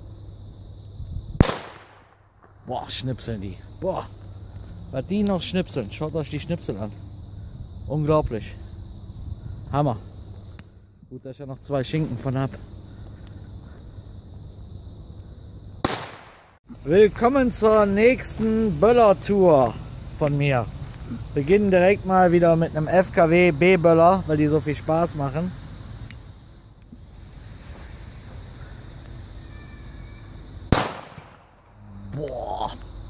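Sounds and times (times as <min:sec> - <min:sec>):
low outdoor rumble: 0:00.0 - 0:29.5
firecracker bang: 0:01.4 - 0:02.5, 0:15.8 - 0:16.6, 0:30.7 - 0:31.8.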